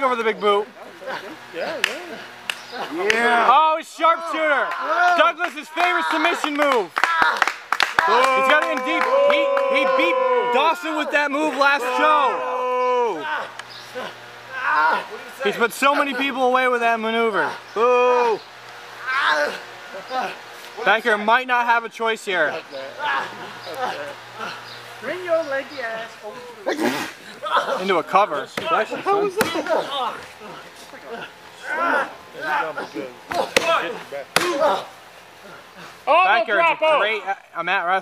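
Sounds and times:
men's voices: 0.0s - 7.4s, 8.0s - 38.0s
man's wordless vocal cry: 8.1s - 15.3s
sharp wrestling smacks: 34.4s - 34.6s.

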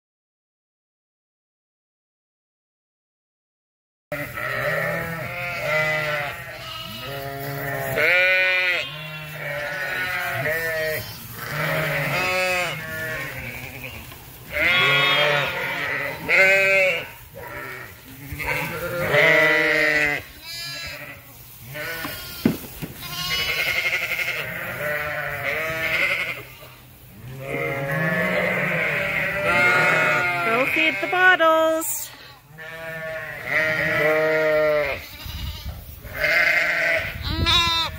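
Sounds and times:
sheep bleating: 4.1s - 37.9s.

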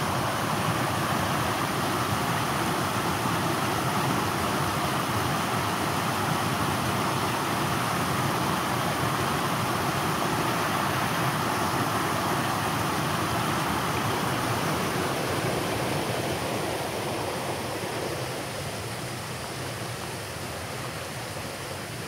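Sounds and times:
shallow stream over stones: 0.0s - 22.0s
water rushing over a weir: 0.0s - 22.0s.

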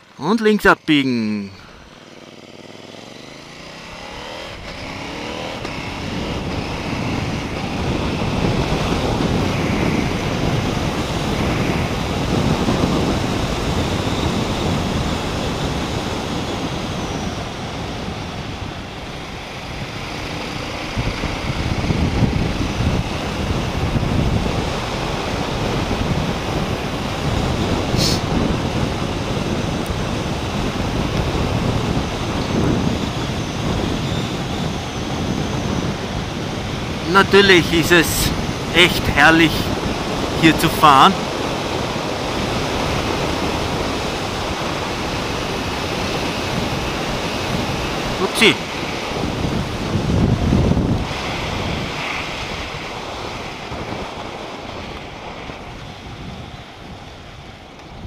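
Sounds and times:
motorcycle engine accelerating: 1.6s - 38.8s
wind rushing over microphone: 4.1s - 58.0s.

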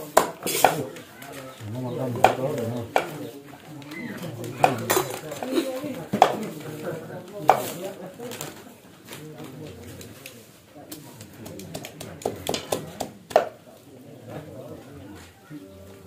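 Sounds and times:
cleaver chopping on wood: 0.1s - 0.8s, 2.2s - 3.2s, 6.2s - 6.4s, 11.8s - 13.6s.

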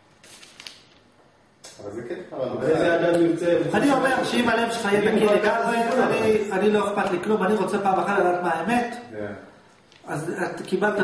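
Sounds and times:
man talking: 1.8s - 9.5s.

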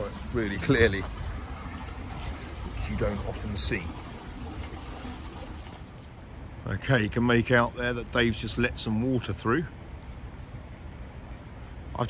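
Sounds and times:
rushing water: 0.0s - 12.0s.

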